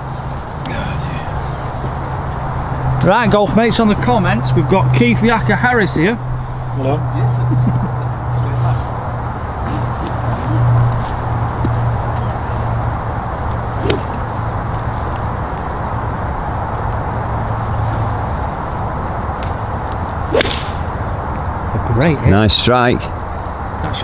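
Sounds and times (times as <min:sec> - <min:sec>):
golf club swishing: 0:13.8 - 0:14.2, 0:20.3 - 0:20.9
golf club striking ball: 0:13.8 - 0:14.3, 0:20.3 - 0:21.0.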